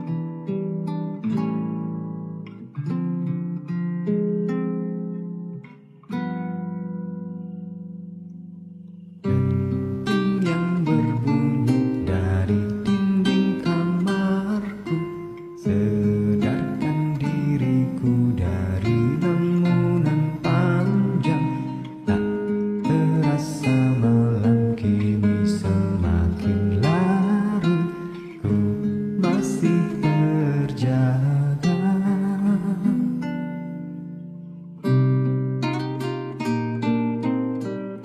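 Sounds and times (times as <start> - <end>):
acoustic guitar chords: 0.0 - 38.0
man singing a slow ballad: 10.1 - 33.4.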